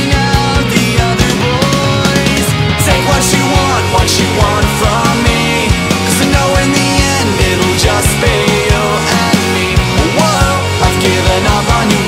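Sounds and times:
fast steady drumbeat: 0.0 - 12.0
pop-punk rock band: 0.0 - 12.0.

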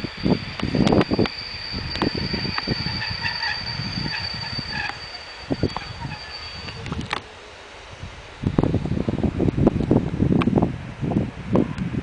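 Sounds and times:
train rumbling: 0.0 - 12.0.

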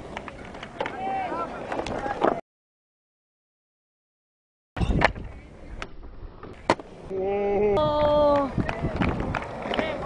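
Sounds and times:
skateboards clicking on concrete: 0.0 - 2.4, 7.8 - 10.0
skaters shouting and chatting: 0.0 - 2.4, 6.5 - 10.0
man shouting whoa: 7.1 - 8.5.

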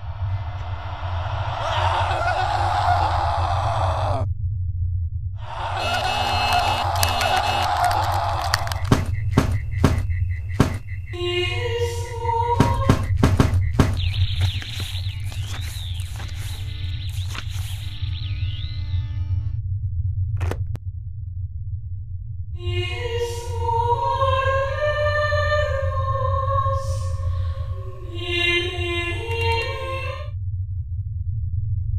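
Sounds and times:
steady low hum: 0.0 - 31.9
wavering high electronic tone: 8.8 - 19.6.

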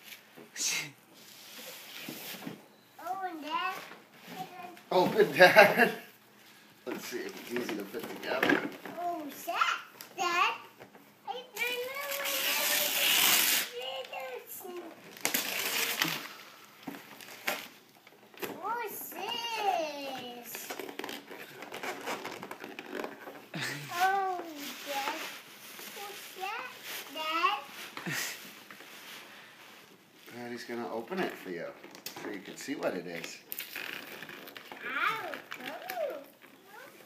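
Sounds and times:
wrapping paper crinkling and tearing: 11.6 - 17.8, 20.6 - 29.5.

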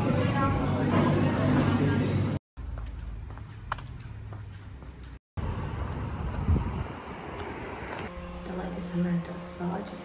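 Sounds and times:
street noise rumble: 0.0 - 10.0
woman speaking: 8.4 - 10.0.

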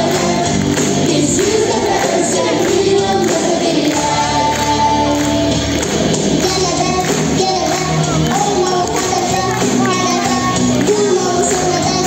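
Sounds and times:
large choir singing: 0.0 - 5.6
loud instrumental accompaniment: 0.0 - 12.0.

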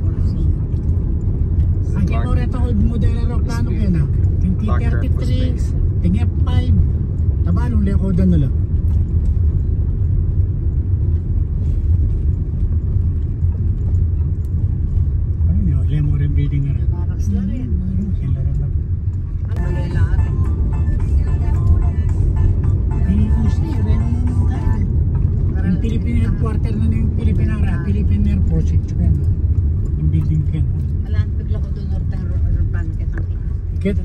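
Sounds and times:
road rumble inside car: 0.0 - 34.0
person speaking: 1.9 - 6.8
music with singing: 19.5 - 25.0.

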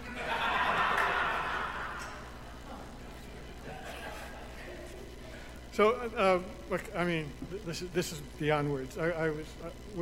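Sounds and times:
audience laughing: 0.0 - 5.2.

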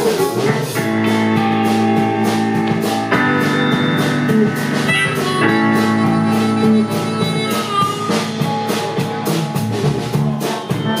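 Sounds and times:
drum kit steady beat: 0.0 - 11.0
electric bass: 0.0 - 11.0
electric guitar: 0.0 - 11.0
blues harmonica: 0.8 - 11.0.

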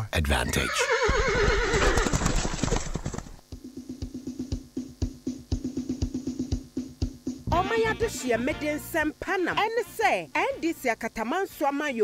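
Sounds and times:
horse hoofbeats clip-clopping: 1.0 - 3.4
electronic drum beat: 3.4 - 7.6.

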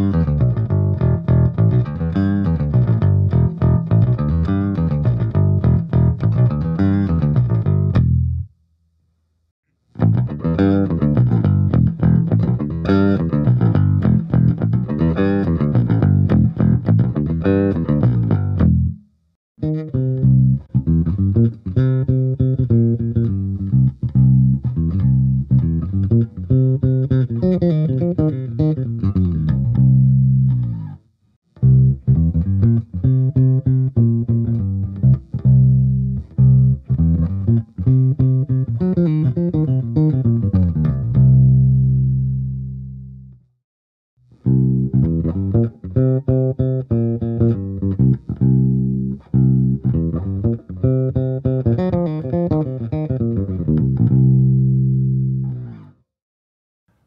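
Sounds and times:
electric bass played with a pick: 0.0 - 8.5, 9.9 - 43.5, 44.3 - 56.0.

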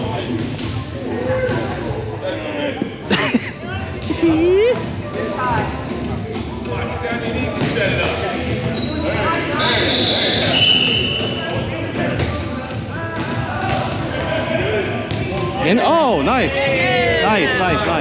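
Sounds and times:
background chatter: 0.0 - 18.0.

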